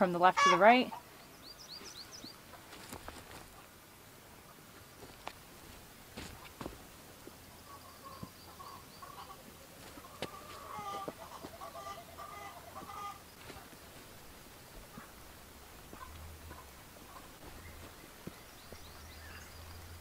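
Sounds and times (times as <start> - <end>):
chickens clucking: 0.1 - 3.7, 4.4 - 20.0
hands working loose soil: 1.9 - 3.7, 4.8 - 7.4, 9.7 - 19.9.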